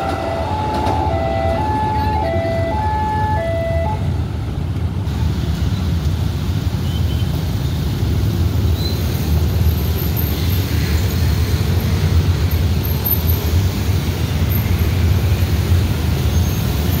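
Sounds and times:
motorcycle and scooter traffic: 0.0 - 17.0.

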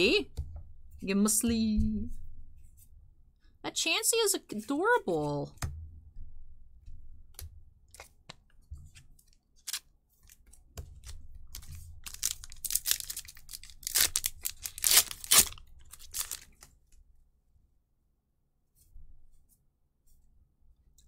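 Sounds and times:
foil wrapper crinkling and tearing: 9.6 - 16.7.

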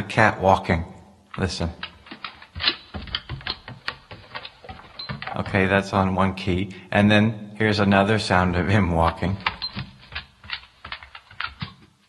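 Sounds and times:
dog footfall taps: 1.8 - 5.7.

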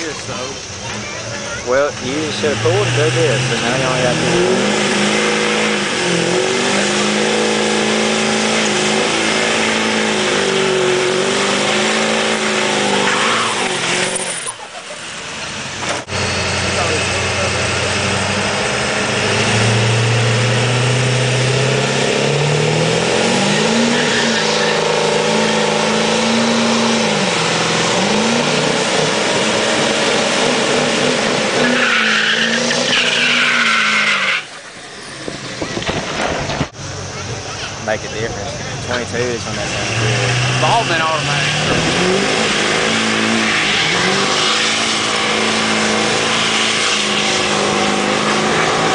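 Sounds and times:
diesel engine at high revs: 0.0 - 48.9
tyres squealing on pavement: 0.0 - 48.9.

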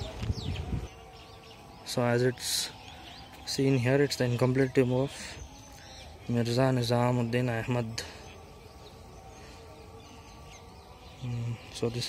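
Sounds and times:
bird chirps: 0.0 - 12.0.

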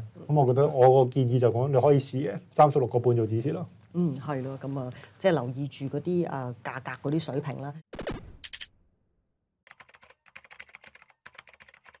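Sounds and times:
keyboard typing clicks: 9.7 - 12.0.

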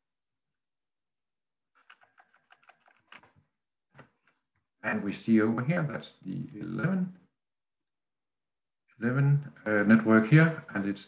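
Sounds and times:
keyboard keystrokes: 1.8 - 3.4.

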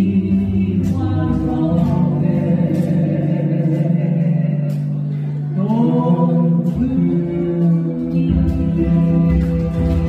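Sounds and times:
group singing in harmony: 0.0 - 7.1
acoustic guitars: 0.0 - 10.0.

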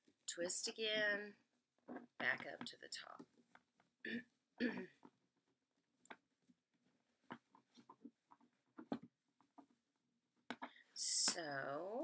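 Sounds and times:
ribbon rustling and clicking on wire: 6.0 - 9.8.

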